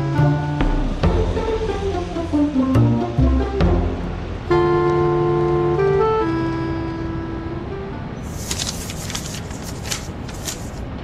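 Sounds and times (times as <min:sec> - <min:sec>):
paper sheets rustling and flapping: 0:08.2 - 0:11.0.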